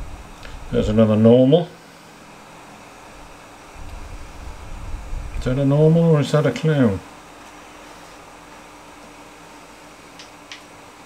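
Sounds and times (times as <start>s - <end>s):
room hum and hiss: 0.0s - 11.0s.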